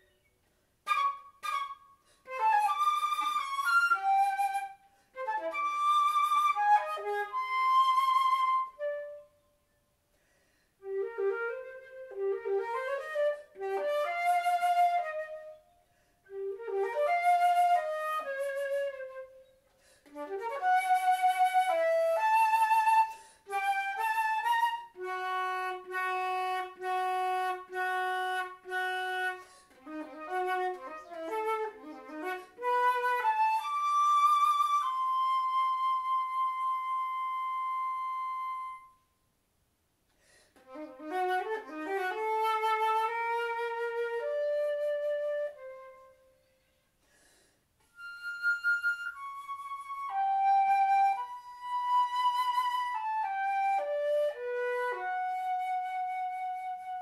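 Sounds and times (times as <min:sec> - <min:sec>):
solo flute playing: 0:00.0 - 0:09.8, 0:10.8 - 0:39.2, 0:40.6 - 0:46.9, 0:47.8 - 0:57.0.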